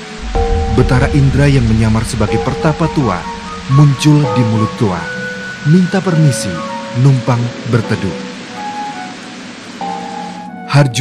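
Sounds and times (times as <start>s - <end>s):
steady rain hiss: 0.0s - 11.0s
soft music with held notes: 0.3s - 11.0s.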